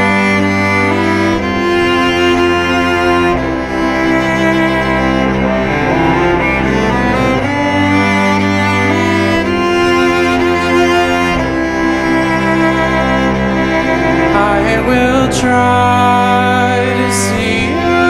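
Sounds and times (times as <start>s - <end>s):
bowed cello playing chords: 0.7s - 18.0s.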